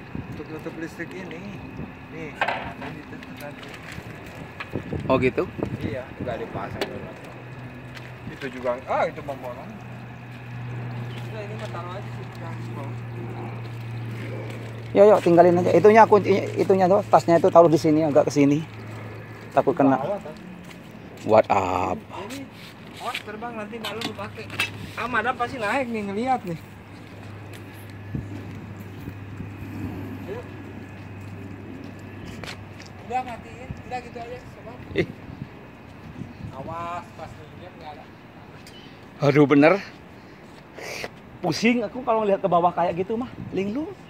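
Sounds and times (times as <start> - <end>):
steady low hum: 0.0 - 39.2
distant voices: 0.0 - 44.0.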